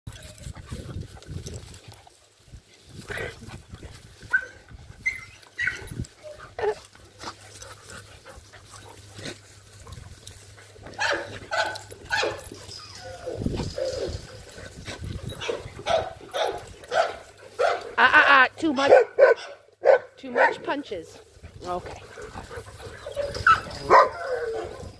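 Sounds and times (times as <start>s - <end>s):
dogs yipping: 4.2s - 7.6s, 10.9s - 17.8s, 22.4s - 24.9s.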